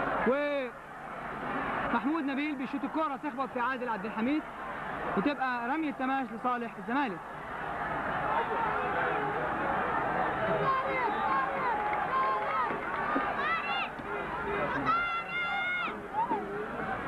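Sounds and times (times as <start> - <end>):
murmur of large crowd: 0.0 - 17.0.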